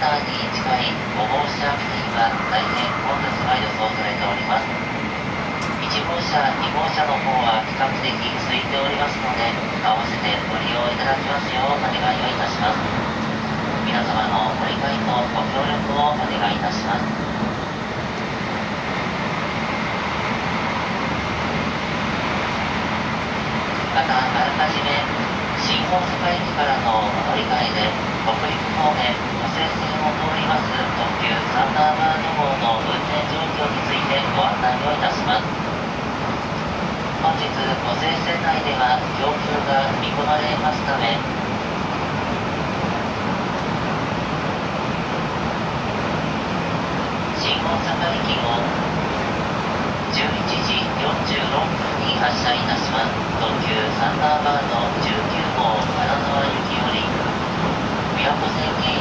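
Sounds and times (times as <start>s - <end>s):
train cabin running noise: 0.0s - 59.0s.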